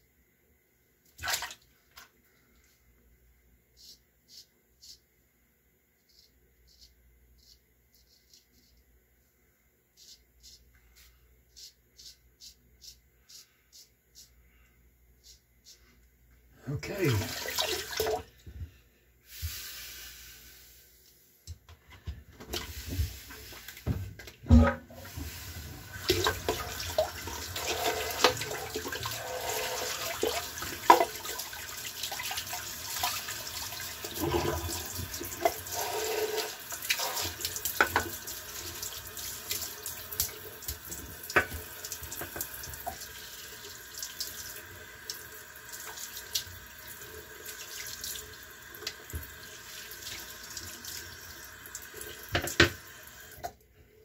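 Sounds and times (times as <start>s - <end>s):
tap running into sink: 52.3s - 52.8s.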